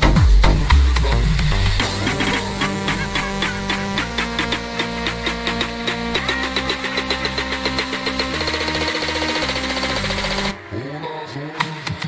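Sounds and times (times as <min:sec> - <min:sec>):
bass-boosted electronic club music: 0:00.0 - 0:12.0.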